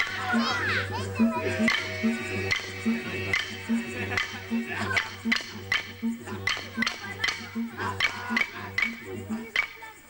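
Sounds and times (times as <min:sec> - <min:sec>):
didjeridu droning: 0:00.0 - 0:10.0
high voices calling out: 0:00.0 - 0:10.0
clapstick strikes: 0:02.5 - 0:09.8.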